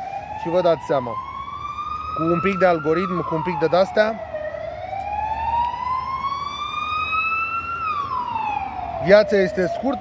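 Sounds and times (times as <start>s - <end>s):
emergency vehicle siren wailing: 0.0s - 10.0s.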